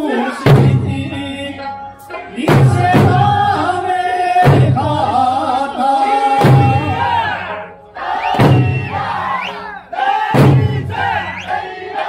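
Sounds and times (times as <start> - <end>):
held sung line: 0.0 - 12.0
taiko drum booms: 0.4 - 1.2, 2.5 - 3.6, 4.4 - 5.0, 6.4 - 7.1, 8.3 - 9.2, 10.3 - 11.3
dancers shouting: 6.8 - 12.0.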